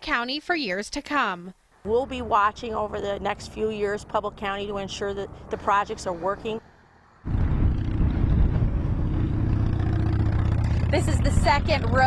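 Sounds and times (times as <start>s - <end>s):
low rumble of road traffic: 1.8s - 12.0s.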